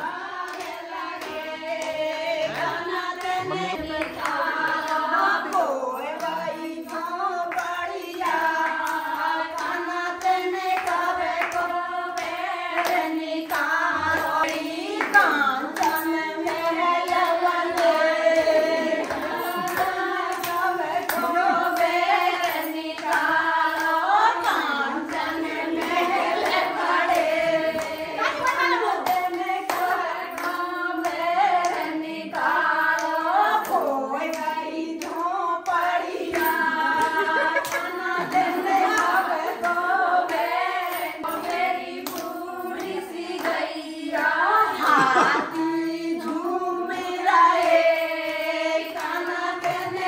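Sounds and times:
rhythmic hand clapping: 0.0s - 50.0s
person singing: 2.3s - 8.0s, 13.6s - 22.6s, 33.4s - 40.2s, 44.5s - 47.7s.

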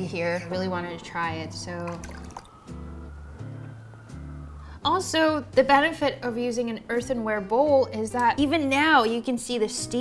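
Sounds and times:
tea pouring into cup: 1.9s - 2.6s.

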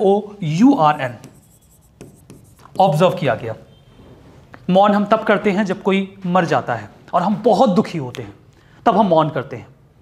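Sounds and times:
pen scratching on board: 0.9s - 3.3s.

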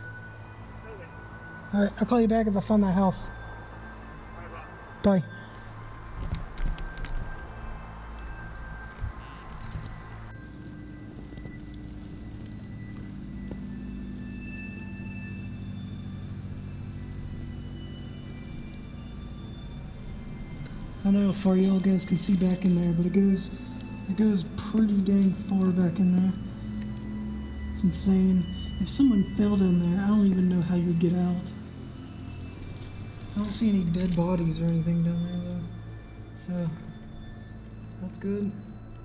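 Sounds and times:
eerie music drone: 0.0s - 39.0s.

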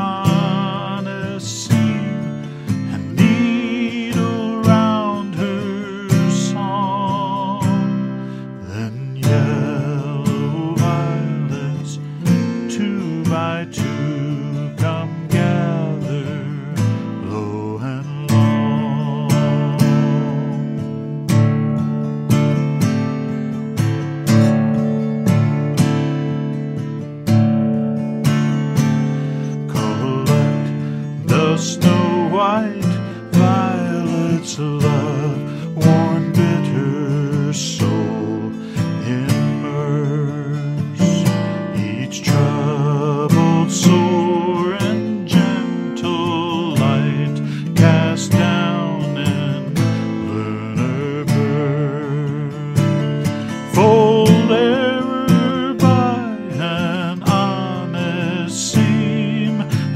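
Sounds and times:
acoustic guitar picked and strummed: 0.0s - 59.9s.

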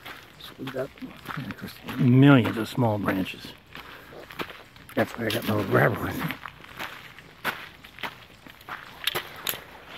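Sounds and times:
footsteps on gravel: 0.0s - 9.9s.

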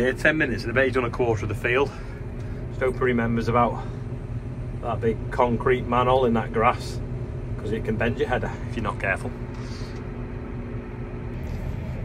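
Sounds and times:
faint steady whine: 0.0s - 12.0s
farm vehicle engine hum: 0.0s - 12.0s.

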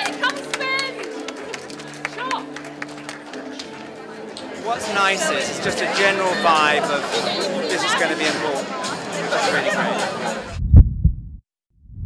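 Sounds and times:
low thumps: 10.4s - 12.0s.

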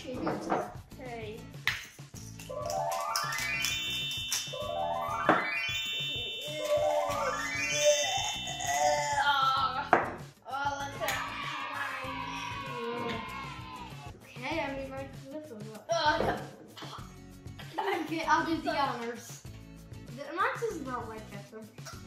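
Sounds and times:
background music: 0.0s - 22.0s
rising sweeping sound effect: 2.5s - 8.9s.

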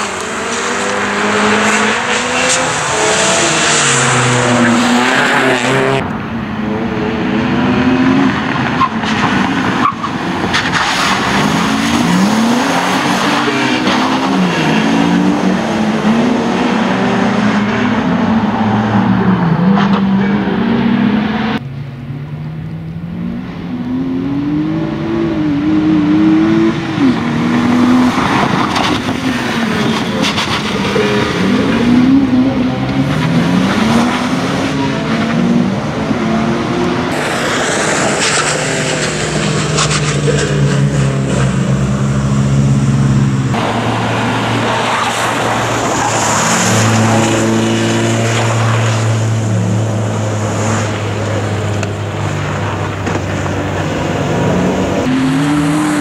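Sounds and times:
car engine revving hard: 0.0s - 6.1s, 6.8s - 21.6s, 23.2s - 56.0s.

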